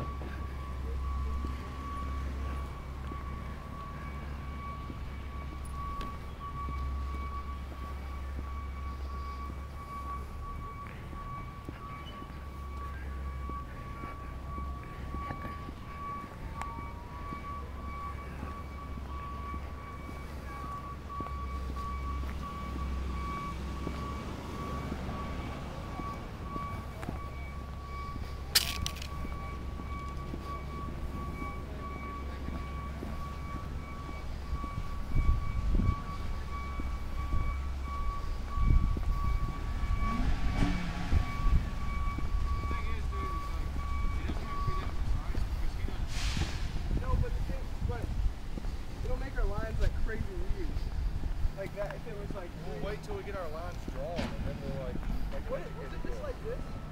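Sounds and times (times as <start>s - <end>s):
wind buffeting microphone: 33.0s - 51.6s.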